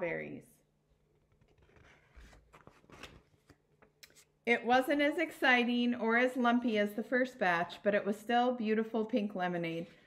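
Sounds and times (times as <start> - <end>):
paper rustling: 1.3 - 4.3.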